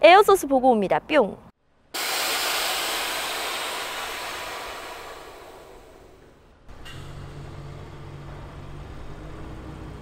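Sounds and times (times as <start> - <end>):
air suspension hissing: 2.0 - 6.4.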